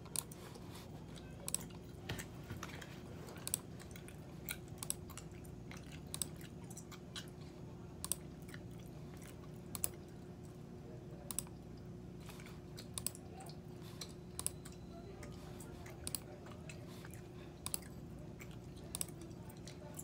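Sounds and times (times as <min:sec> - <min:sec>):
steady low hum: 0:00.0 - 0:20.0
gum chewing mouth clicks: 0:15.8 - 0:19.8.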